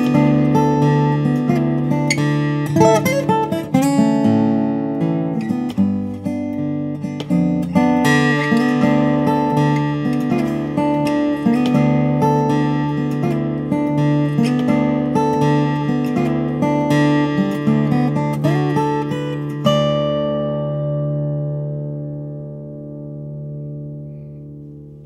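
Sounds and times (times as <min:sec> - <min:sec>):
fingerstyle acoustic guitar: 0:00.0 - 0:25.0.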